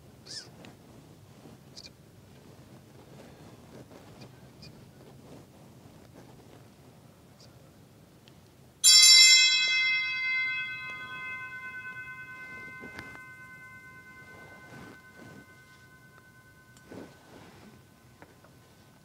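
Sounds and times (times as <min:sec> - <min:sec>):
altar bell ringing: 0:08.8 - 0:19.0.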